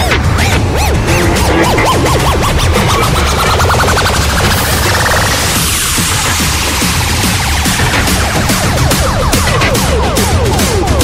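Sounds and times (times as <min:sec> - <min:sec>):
psytrance electronic music: 0:00.0 - 0:11.0.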